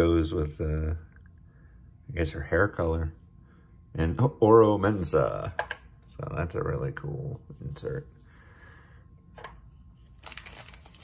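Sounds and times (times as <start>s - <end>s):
foil wrappers crinkling: 10.1s - 11.0s.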